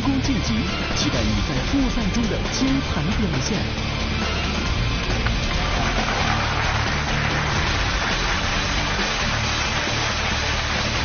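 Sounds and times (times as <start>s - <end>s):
background music: 0.0s - 11.0s
audience applause: 5.4s - 11.0s.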